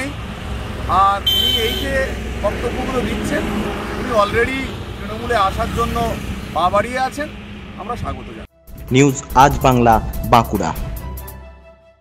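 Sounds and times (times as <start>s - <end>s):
man speaking: 0.9s - 10.8s.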